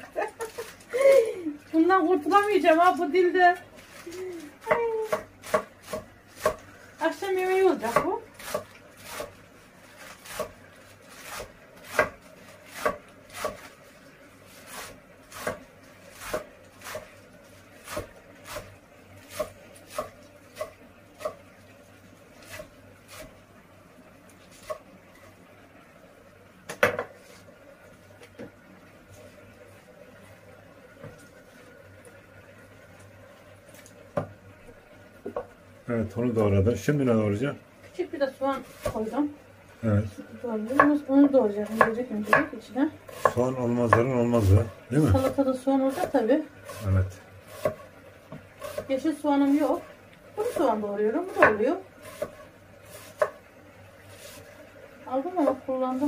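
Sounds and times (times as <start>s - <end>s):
knife chopping lettuce on wooden board: 4.7s - 6.6s, 7.8s - 9.4s, 10.0s - 13.8s, 14.6s - 17.1s, 17.8s - 21.4s, 38.6s - 39.1s, 41.7s - 42.5s, 43.1s - 48.9s, 49.7s - 53.4s.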